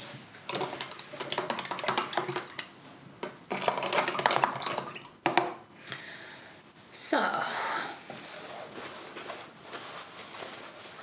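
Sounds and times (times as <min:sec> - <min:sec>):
paper and plastic crinkling: 0:08.1 - 0:11.0.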